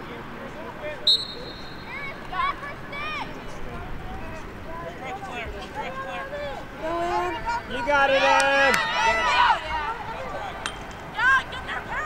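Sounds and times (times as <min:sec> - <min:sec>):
outdoor field ambience: 0:00.0 - 0:12.0.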